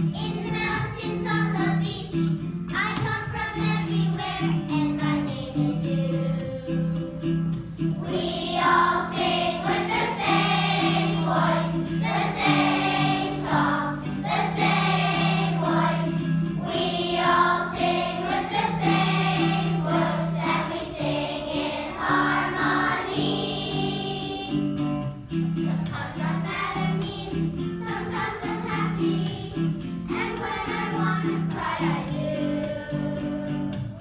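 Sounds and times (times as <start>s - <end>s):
children's choir singing: 0.0s - 34.0s.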